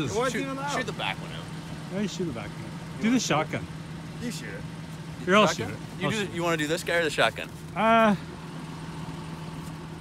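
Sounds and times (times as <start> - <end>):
car engine running at raised revs: 0.0 - 10.0.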